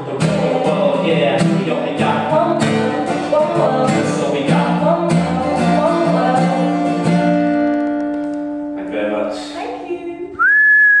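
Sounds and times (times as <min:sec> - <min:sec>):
acoustic guitar chord ringing: 0:00.0 - 0:09.4
loud high-pitched whistle: 0:10.4 - 0:11.0.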